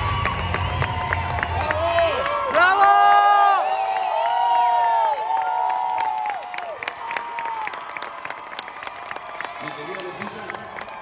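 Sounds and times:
large audience cheering: 0.0s - 11.0s.

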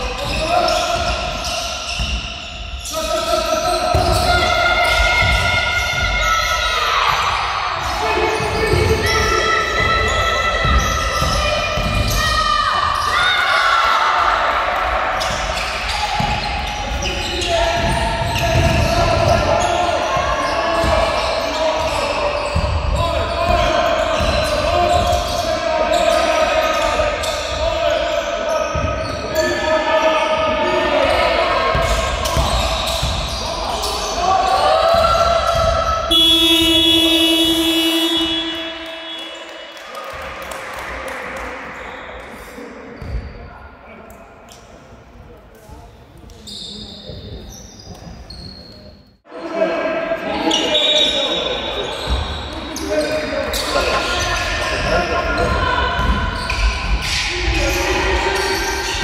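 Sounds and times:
players shouting: 3.1s - 40.3s
scoreboard buzzer: 36.1s - 39.2s.

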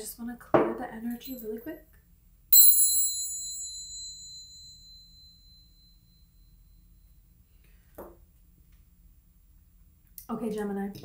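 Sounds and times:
small metal bell ringing: 1.1s - 1.8s, 2.6s - 7.0s.

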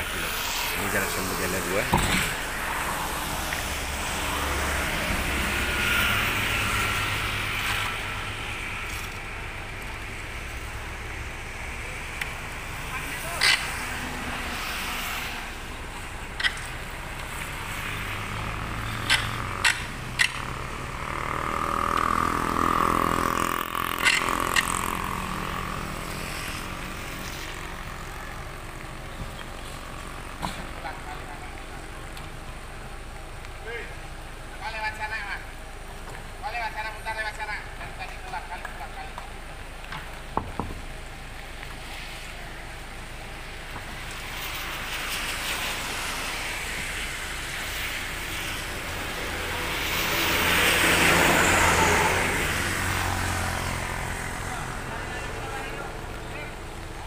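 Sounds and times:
motorcycle passing: 0.0s - 32.3s, 40.0s - 57.0s
passing road traffic: 0.0s - 57.0s.

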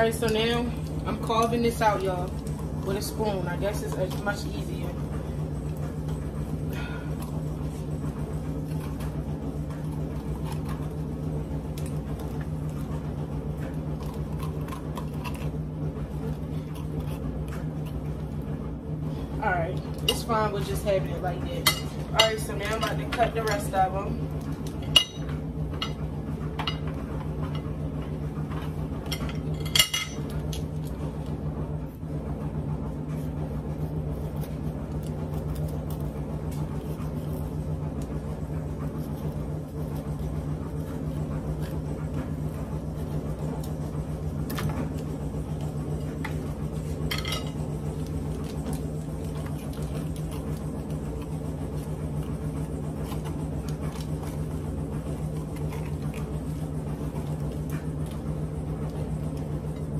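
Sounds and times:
low hum: 0.0s - 59.9s.

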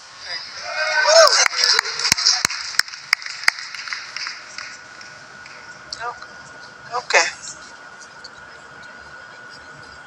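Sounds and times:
audience applause: 1.0s - 5.6s
sharp hand claps: 1.3s - 5.6s.

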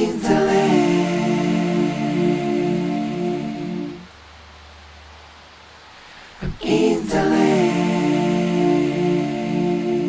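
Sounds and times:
faint hiss: 0.0s - 10.0s
steady low hum: 0.0s - 10.0s.

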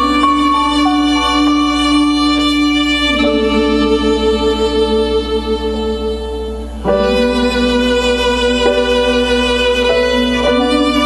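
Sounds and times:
sustained accompaniment: 0.0s - 11.0s
violin playing long held notes: 0.0s - 11.0s.

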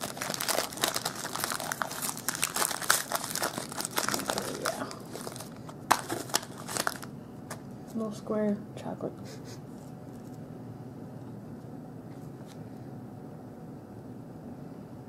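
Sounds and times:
foil wrapper crinkling: 0.0s - 7.6s.

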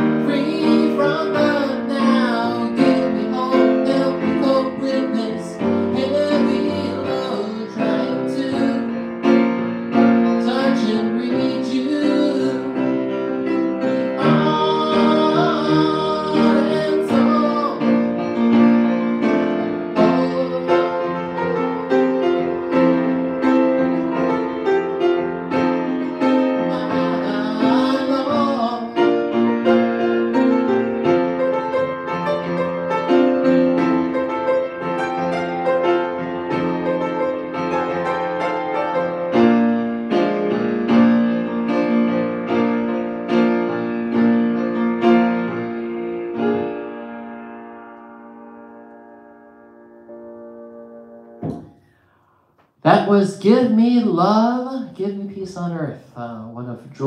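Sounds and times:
grand piano chords: 0.0s - 57.0s.

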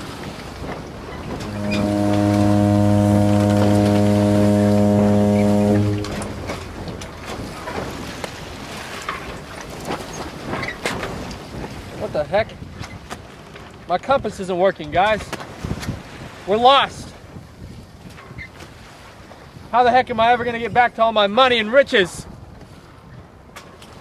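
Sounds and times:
ship's horn blast: 1.2s - 7.8s.

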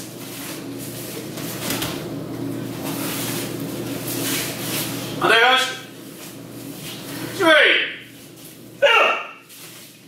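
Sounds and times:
person shouting sharp cry: 8.8s - 9.4s.

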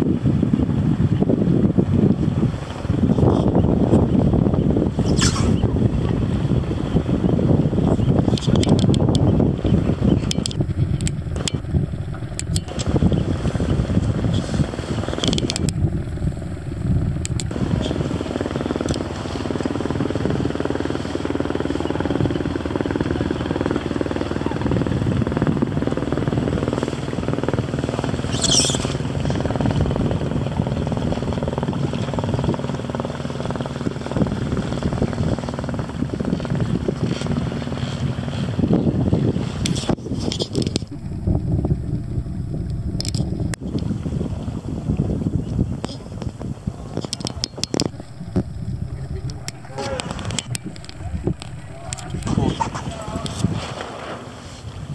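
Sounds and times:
motorboat engine running: 0.0s - 54.9s
wind on microphone: 0.0s - 54.9s.

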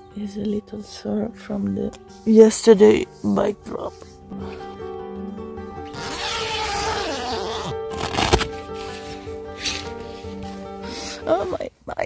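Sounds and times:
background music: 0.0s - 12.0s
rustling handling noise: 6.0s - 11.6s.

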